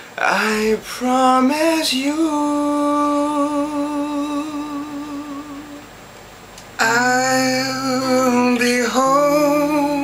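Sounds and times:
man singing a long note: 0:00.2 - 0:05.9, 0:06.8 - 0:10.0.

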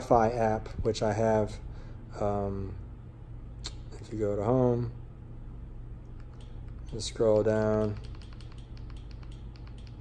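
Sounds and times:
low steady hum: 0:00.0 - 0:10.0
fast even clicking: 0:06.2 - 0:10.0.

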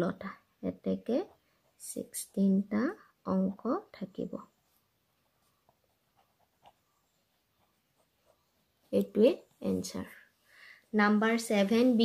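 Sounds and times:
ballpoint pen writing on paper: 0:05.4 - 0:09.0.

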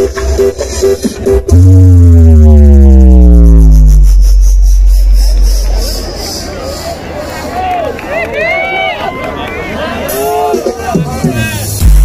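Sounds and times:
heavy bass tone sliding down: 0:00.0 - 0:06.9
loud electronic dance music: 0:00.0 - 0:07.1, 0:10.1 - 0:12.0.

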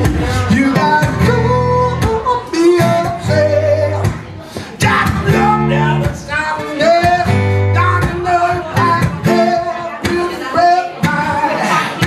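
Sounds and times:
acoustic guitar strumming: 0:00.0 - 0:12.0
man singing blues: 0:00.0 - 0:12.0.

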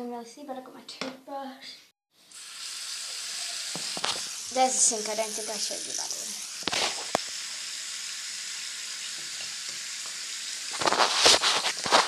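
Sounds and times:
tap running into sink: 0:03.1 - 0:04.4.

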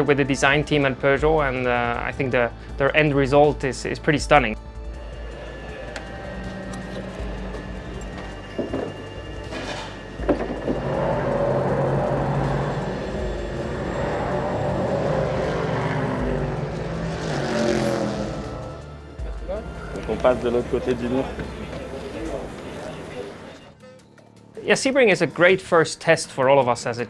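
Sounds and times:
race car engines: 0:00.0 - 0:03.8, 0:04.8 - 0:23.7
background music: 0:00.0 - 0:27.0.

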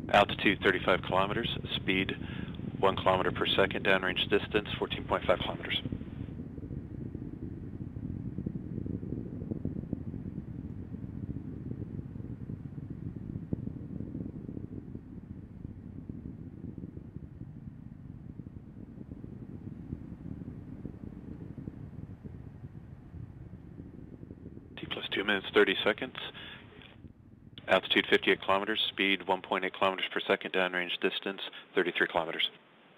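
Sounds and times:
rocket engine low rumble: 0:00.0 - 0:32.5.

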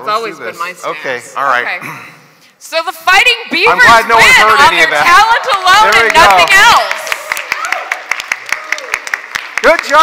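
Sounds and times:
scattered hand clapping: 0:05.2 - 0:10.0.

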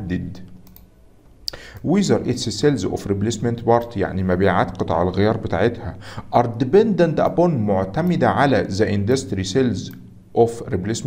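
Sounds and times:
light computer clicks: 0:00.4 - 0:00.9.

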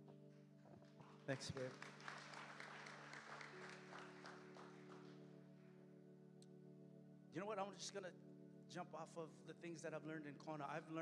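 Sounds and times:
soft music sustained chords: 0:00.0 - 0:11.0
audience applause: 0:00.9 - 0:05.3.

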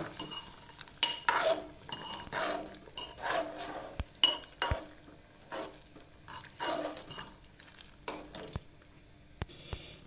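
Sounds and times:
metal spoon scraping pot: 0:00.0 - 0:07.4
spoon clinking against pot: 0:04.2 - 0:04.8.

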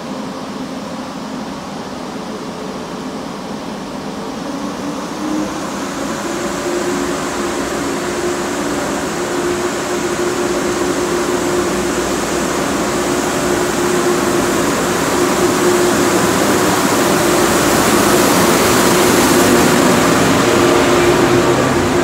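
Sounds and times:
electric train passing: 0:00.0 - 0:22.0.

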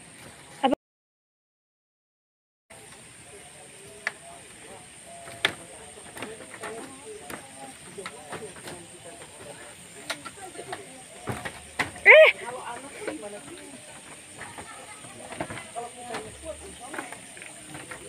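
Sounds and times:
faint voices: 0:02.7 - 0:18.0
steady high hiss: 0:02.7 - 0:18.0
footsteps on wooden boardwalk: 0:05.2 - 0:18.0.

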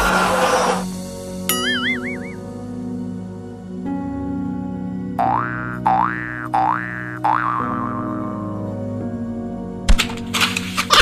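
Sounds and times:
background music: 0:00.0 - 0:11.0
cartoon boing sound effect: 0:01.5 - 0:02.4, 0:05.2 - 0:08.6.

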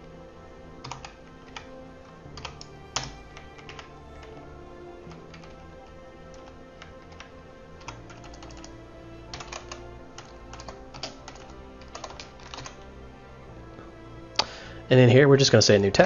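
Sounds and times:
faint background music: 0:00.0 - 0:16.0.

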